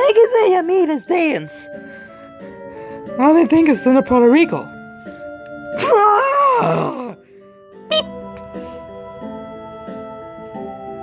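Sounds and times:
electronic keyboard notes: 0.0 - 11.0
wavering vocal groan: 6.2 - 7.2.

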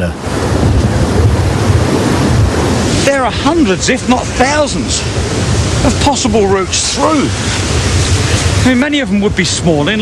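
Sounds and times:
heavy low rumble: 0.0 - 10.0
sea waves: 0.0 - 10.0
wind: 0.0 - 10.0.

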